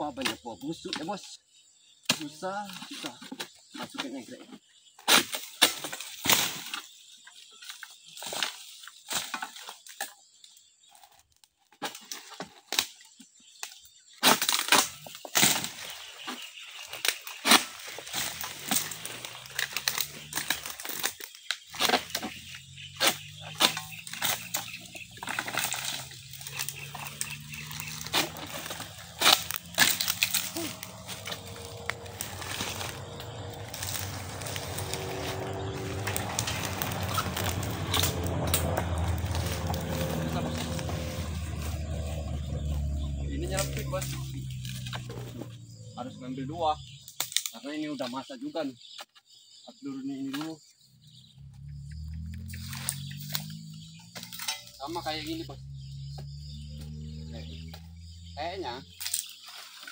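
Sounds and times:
sickle hacking palm fronds: 0:05.0 - 0:06.9, 0:14.2 - 0:45.5, 0:56.7 - 0:59.9
fronds crackling and rustling: 0:05.1 - 0:46.0, 0:46.7 - 0:48.2, 0:52.0 - 0:59.9
engine hum: 0:14.7 - 0:47.1, 0:50.8 - 0:59.5.

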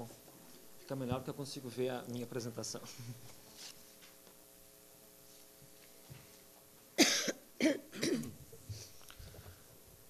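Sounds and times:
man coughing into a microphone: 0:07.0 - 0:08.4.

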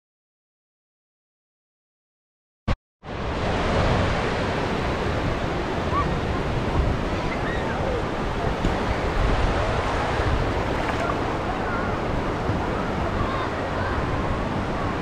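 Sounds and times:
waves washing over sandy shore: 0:03.1 - 0:15.0
wind buffeting microphone: 0:03.3 - 0:15.0.

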